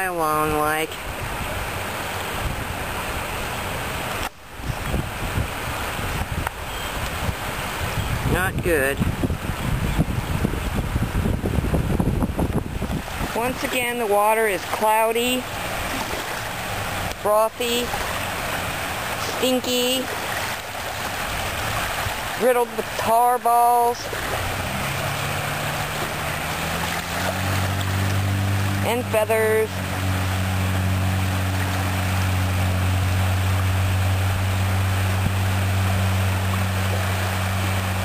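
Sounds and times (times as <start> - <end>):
ocean water washing: 0.0 - 38.0
wind rumbling on microphone: 0.0 - 38.0.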